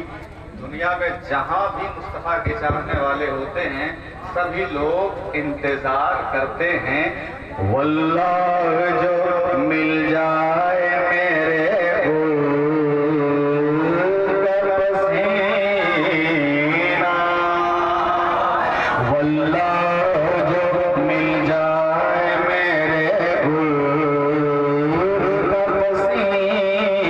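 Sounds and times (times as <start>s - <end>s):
man singing a long note: 7.5s - 27.0s.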